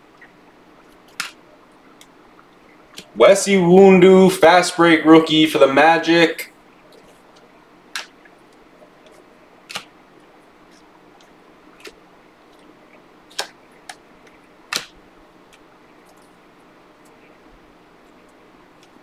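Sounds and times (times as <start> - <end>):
faint room hum: 0.0 - 19.0
cards clicking and snapping: 9.7 - 9.9, 14.7 - 15.0.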